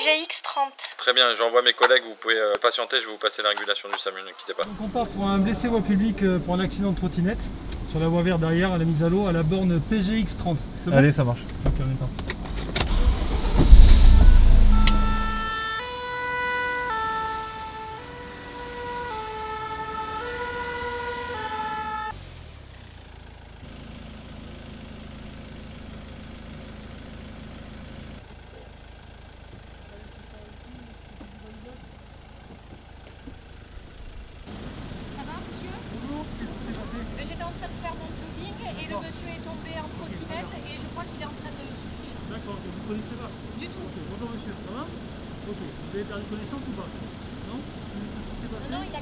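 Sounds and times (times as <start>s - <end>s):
vehicle engine rumble: 3.9s - 49.0s
two-tone ambulance siren: 14.2s - 22.2s.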